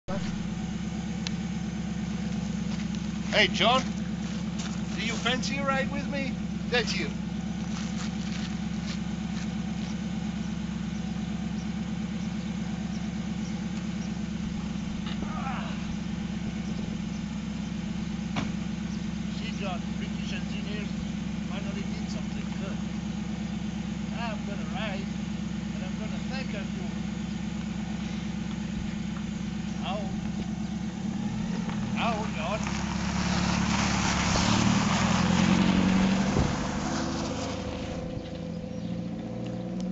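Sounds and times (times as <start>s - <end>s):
sports car engine idling and revving: 0.0s - 39.9s
tyres crunching over gravel: 0.1s - 39.8s.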